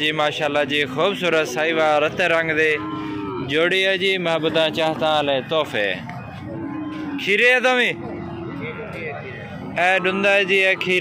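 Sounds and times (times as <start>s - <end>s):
young bull mooing: 1.2s - 4.7s, 6.4s - 11.0s.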